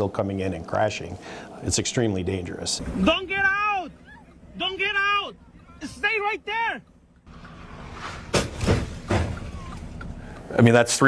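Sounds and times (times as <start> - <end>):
short rough thumps: 7.0 - 10.4.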